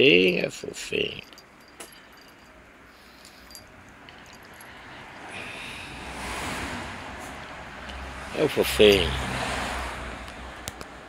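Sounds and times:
small collar bell jingling: 0:00.2 - 0:04.8, 0:08.7 - 0:09.2
road vehicle passing by: 0:02.8 - 0:11.0.

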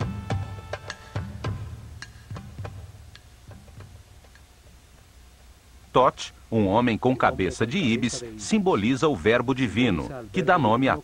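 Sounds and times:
faint wooden percussion ticks: 0:00.0 - 0:06.0.

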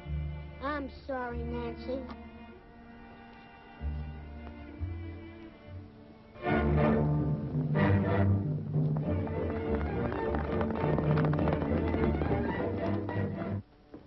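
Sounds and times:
orchestral music with strings: 0:00.0 - 0:13.7.

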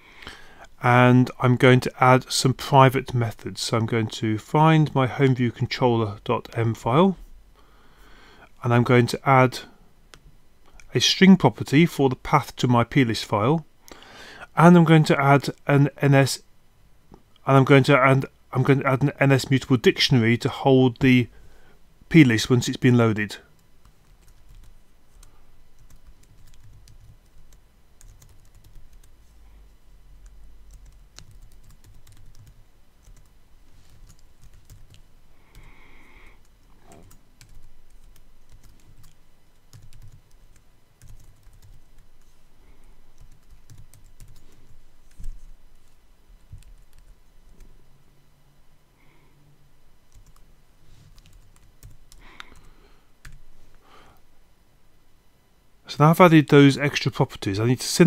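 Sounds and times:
faint low hum: 0:00.0 - 0:58.0
computer keyboard typing: 0:23.8 - 0:29.1, 0:30.7 - 0:33.3, 0:33.9 - 0:35.0, 0:36.5 - 0:42.1, 0:43.2 - 0:44.5, 0:46.6 - 0:47.1, 0:50.1 - 0:50.4, 0:51.1 - 0:52.6.

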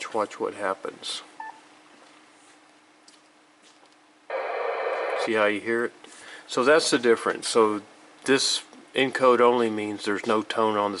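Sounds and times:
faint hum: 0:00.0 - 0:11.0
radio speaker hiss: 0:04.3 - 0:05.5.

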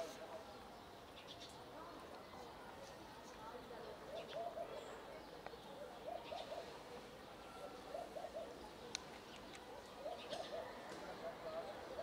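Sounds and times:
pigeon cooing: 0:05.8 - 0:06.8, 0:07.6 - 0:08.8, 0:09.8 - 0:12.0.

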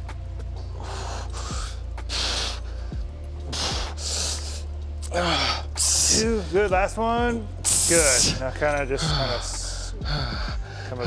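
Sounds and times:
man breathing hard: 0:00.6 - 0:06.6, 0:07.6 - 0:11.0.

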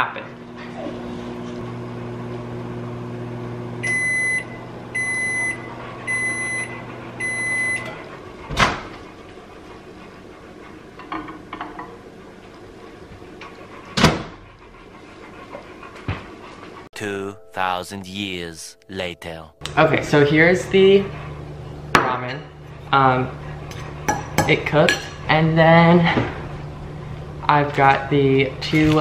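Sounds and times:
microwave oven humming: 0:00.0 - 0:09.3, 0:20.2 - 0:28.6
microwave beeps: 0:03.8 - 0:07.9.

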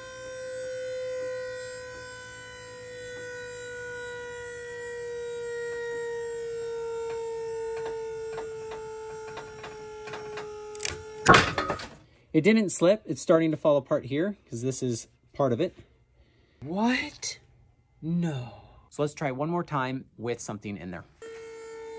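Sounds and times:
motor whine: 0:00.0 - 0:11.3, 0:21.2 - 0:21.9.

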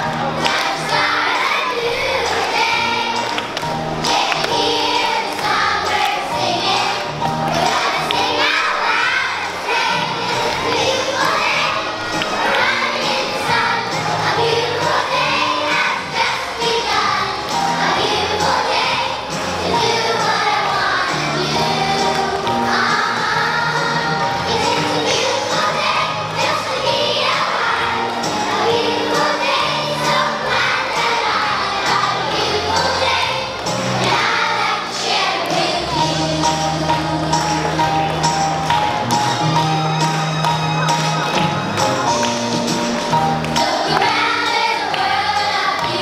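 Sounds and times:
backing music: 0:00.0 - 0:46.0
young children singing and shouting: 0:00.0 - 0:46.0.

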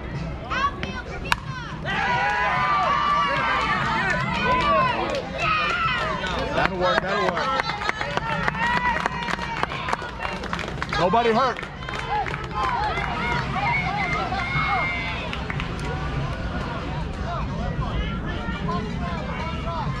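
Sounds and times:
spectators shouting and cheering: 0:00.0 - 0:20.0
bat hitting ball crack: 0:00.8 - 0:01.5
clapping: 0:04.0 - 0:13.1, 0:15.3 - 0:16.4.

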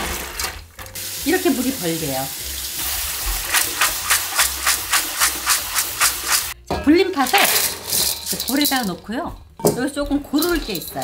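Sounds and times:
running tap water: 0:00.0 - 0:06.6
beans rattling in metal colander: 0:02.8 - 0:06.6, 0:07.2 - 0:09.4, 0:10.3 - 0:11.0.

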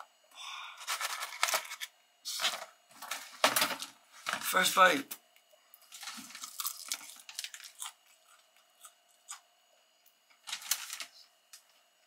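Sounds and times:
crunchy chewing of fried chicken: 0:05.7 - 0:11.2.

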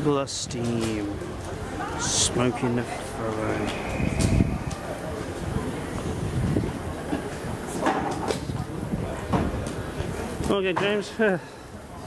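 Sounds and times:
steam locomotive rumbling: 0:01.1 - 0:07.8.

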